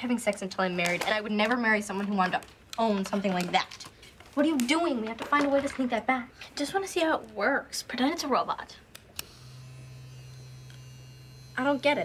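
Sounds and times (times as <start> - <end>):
vibrator motor buzzing: 9.2 - 12.0.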